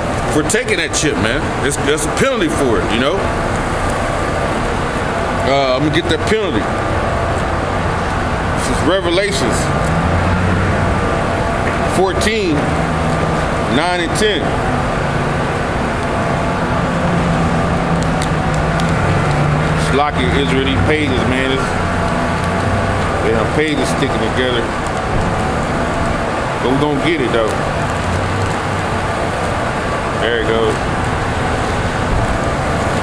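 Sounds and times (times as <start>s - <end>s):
low mechanical hum: 0.0s - 33.0s
road traffic: 0.0s - 33.0s.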